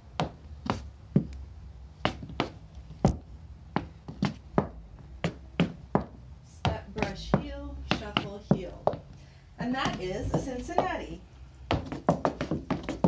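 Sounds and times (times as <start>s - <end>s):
heeled boots tapping on floor: 0.1s - 1.4s, 2.0s - 13.0s.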